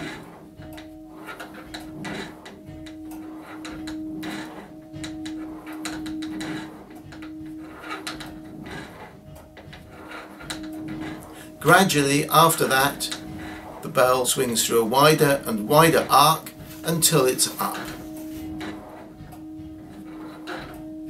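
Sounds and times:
church bell ringing: 0.0 - 21.0.

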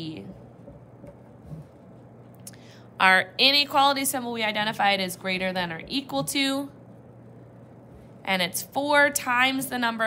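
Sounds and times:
short breath: 2.5 - 3.0
person speaking: 3.0 - 6.8.

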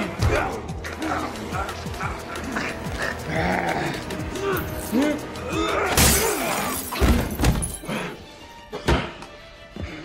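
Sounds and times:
music: 0.0 - 10.0
glass bulb shattering: 5.9 - 7.8.

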